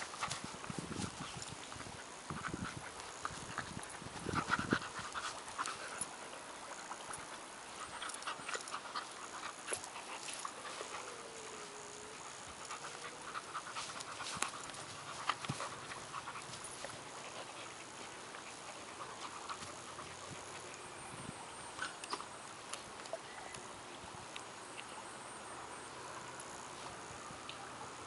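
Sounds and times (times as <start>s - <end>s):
dogs panting: 0.0s - 21.0s.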